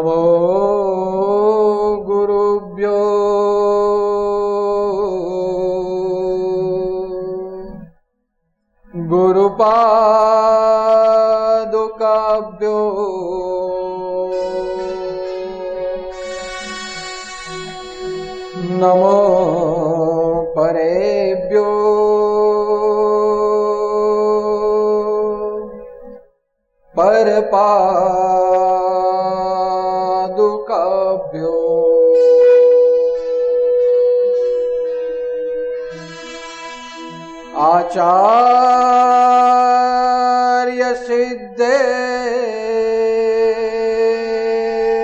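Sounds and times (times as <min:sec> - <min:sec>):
man chanting: 0:00.0 - 0:07.9, 0:08.9 - 0:26.1, 0:27.0 - 0:34.6, 0:37.5 - 0:45.0
held musical drone: 0:13.4 - 0:20.4, 0:31.6 - 0:39.6.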